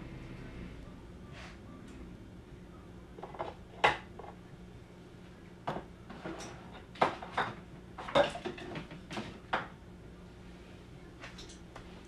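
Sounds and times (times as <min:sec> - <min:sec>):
dishes and utensils clinking: 0:06.1 - 0:09.3.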